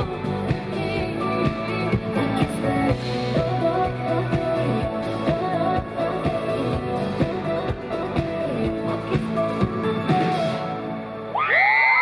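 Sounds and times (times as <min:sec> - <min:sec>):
woman singing: 0:00.0 - 0:10.9
live pop band playing: 0:00.0 - 0:12.0.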